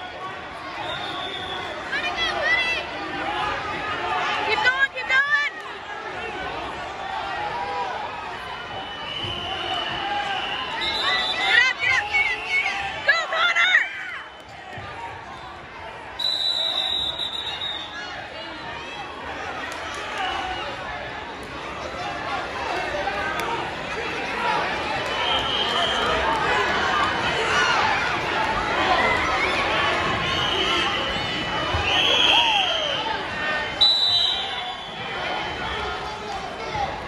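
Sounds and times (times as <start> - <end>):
crowd chatter: 0.0 - 37.0
spectators shouting: 0.0 - 37.0
referee's whistle long blast: 0.8 - 1.7, 8.8 - 11.6, 16.2 - 18.0, 31.8 - 33.1, 33.8 - 35.0.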